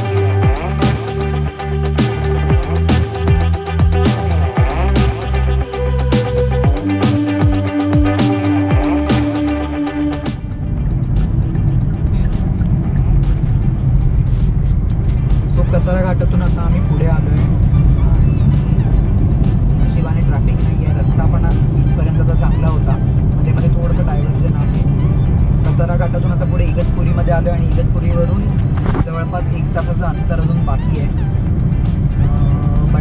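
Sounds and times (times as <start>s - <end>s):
music playing: 0.0s - 33.0s
road and engine rumble: 0.0s - 33.0s.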